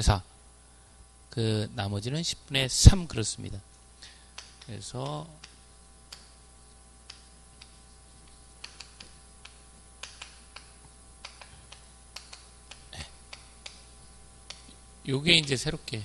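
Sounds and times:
chalk tapping on chalkboard: 7.1 - 13.9.

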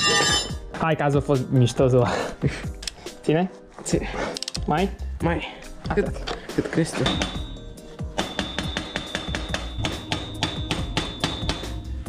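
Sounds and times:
hammer striking metal punch: 0.0 - 0.6, 7.1 - 7.6, 8.2 - 11.8.

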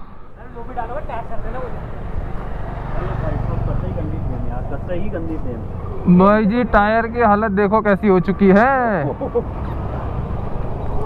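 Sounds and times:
men talking: 0.4 - 9.6.

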